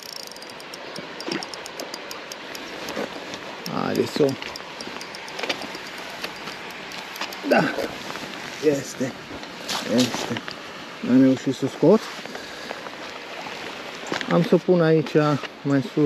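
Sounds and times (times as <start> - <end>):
spinning reel ticking: 0.0 - 7.9
steady hiss: 2.5 - 4.4.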